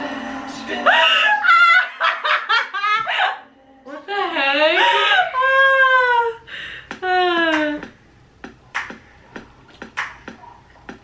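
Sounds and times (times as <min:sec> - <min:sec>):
young women laughing: 0:00.9 - 0:03.4, 0:04.3 - 0:06.4.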